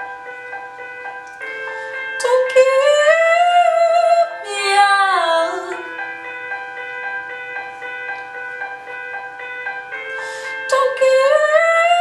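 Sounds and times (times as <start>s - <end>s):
gentle instrumental accompaniment: 0.0s - 12.0s.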